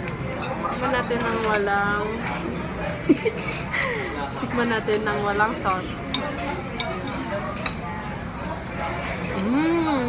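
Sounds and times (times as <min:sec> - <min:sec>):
murmur of voices: 0:00.0 - 0:10.0
cutlery clinking on plates: 0:05.3 - 0:07.9.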